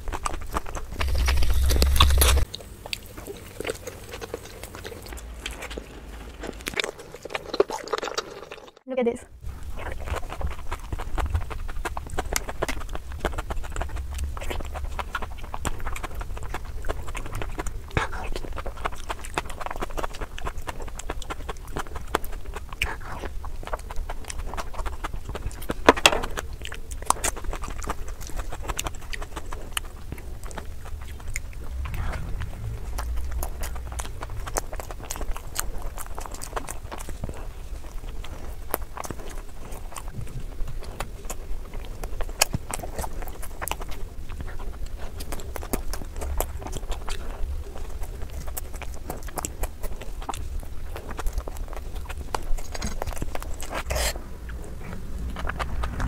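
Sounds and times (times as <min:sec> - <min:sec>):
wet chewing clicks and smacks: 0:00.0 - 0:08.9, 0:09.5 - 0:56.0.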